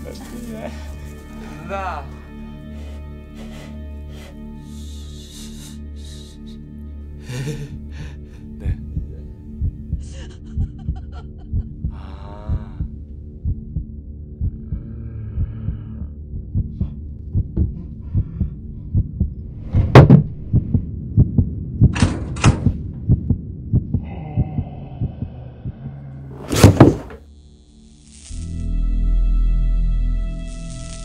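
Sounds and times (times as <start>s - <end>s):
heartbeat pulses: 8.6s - 26.8s.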